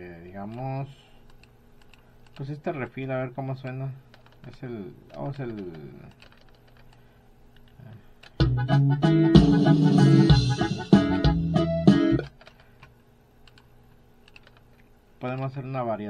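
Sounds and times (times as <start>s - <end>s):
drum loop with pitched instruments: 8.4s - 12.3s.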